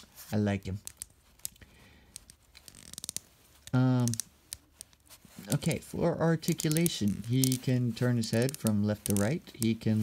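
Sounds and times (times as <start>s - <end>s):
plastic toy clicks and rustles: 6.4s - 10.0s.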